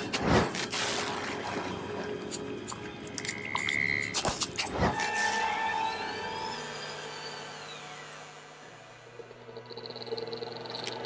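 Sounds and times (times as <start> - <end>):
high gliding tone: 4.7 - 11.0
thin high tone: 4.7 - 11.0
eerie electronic hit: 4.9 - 11.0.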